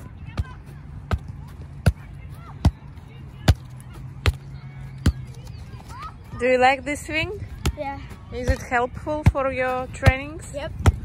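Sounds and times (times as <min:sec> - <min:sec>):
ball being kicked thumps: 0:08.4 - 0:11.0.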